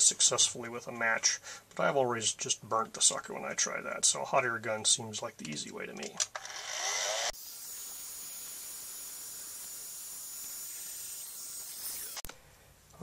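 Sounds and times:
hot air gun hissing: 7.0s - 12.3s.

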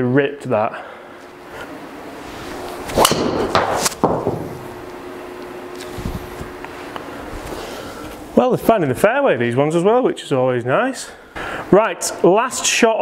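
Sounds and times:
faint steady hum: 0.0s - 13.0s
sharp knocks: 3.0s - 4.7s.

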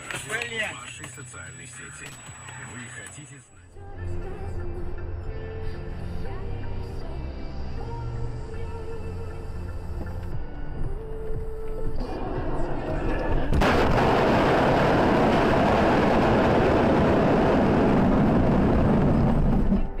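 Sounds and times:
car crash: 13.5s - 20.0s.

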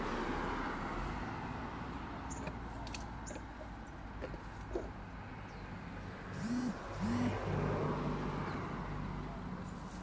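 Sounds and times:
vehicle engine revving: 6.3s - 8.6s.

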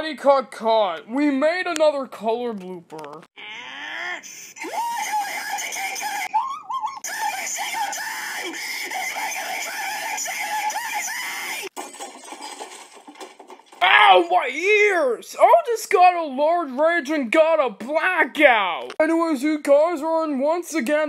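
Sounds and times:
cartoon character shrill scream: 3.4s - 11.7s.

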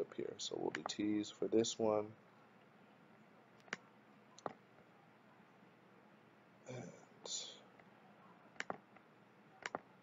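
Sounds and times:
computer mouse clicks: 0.7s - 1.0s, 3.6s - 4.6s, 8.6s - 9.9s.

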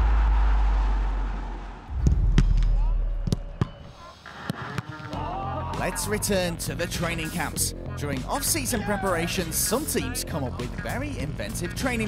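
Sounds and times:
deep booming impact: 0.0s - 3.8s
low hit: 0.0s - 3.8s.

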